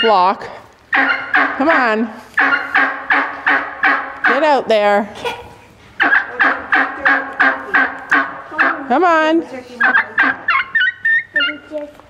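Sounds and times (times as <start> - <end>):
turkey yelping: 0.9 - 4.7, 6.0 - 11.8.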